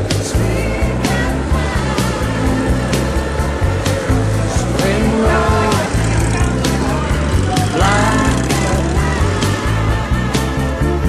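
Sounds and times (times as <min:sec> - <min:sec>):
background music with beat and bass: 0:00.0 - 0:11.0
sliding melodic phrase: 0:00.4 - 0:10.2.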